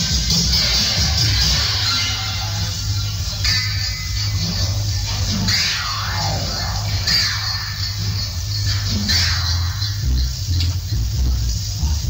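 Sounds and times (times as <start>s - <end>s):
reggae music with heavy bass: 0.0s - 12.0s
electronic downward sweep: 5.1s - 12.0s.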